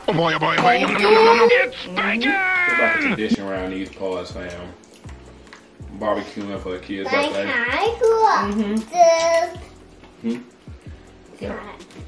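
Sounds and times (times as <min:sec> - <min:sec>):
person humming a falling mmm: 0:08.5 - 0:08.8, 0:10.2 - 0:10.5.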